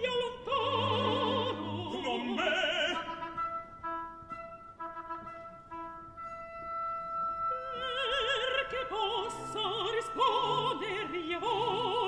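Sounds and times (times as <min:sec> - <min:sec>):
person singing with vibrato: 0:00.0 - 0:03.6, 0:07.5 - 0:12.0
orchestra playing quietly: 0:00.7 - 0:12.0.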